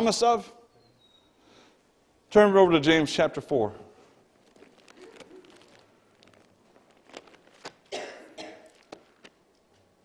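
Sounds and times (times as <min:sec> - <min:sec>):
pages being turned: 0:04.3 - 0:07.9
person coughing: 0:07.9 - 0:08.9.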